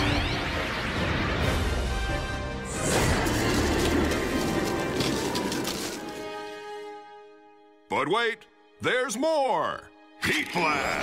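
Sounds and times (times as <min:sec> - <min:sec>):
crashes and impacts: 0:02.7 - 0:06.4.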